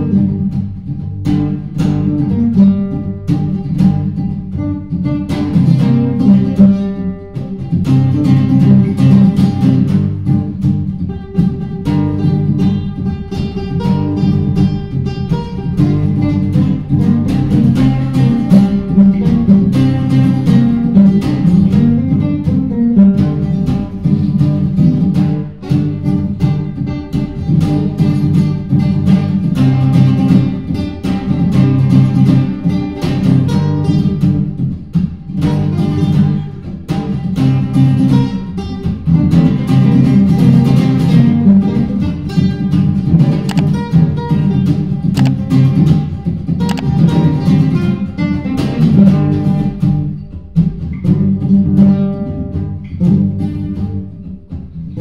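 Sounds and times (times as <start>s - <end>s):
acoustic guitar lead: 0.0s - 55.0s
acoustic guitar strumming chords: 0.0s - 55.0s.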